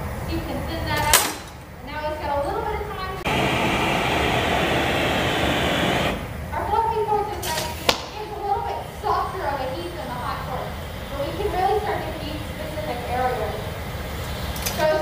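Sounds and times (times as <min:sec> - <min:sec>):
people talking: 0:00.3 - 0:03.4, 0:06.5 - 0:13.7, 0:14.7 - 0:15.0
gas torch hissing: 0:03.2 - 0:06.5.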